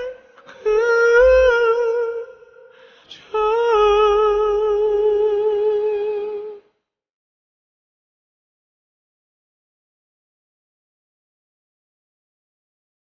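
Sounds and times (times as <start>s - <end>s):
man singing wordless melody: 0.0s - 6.7s.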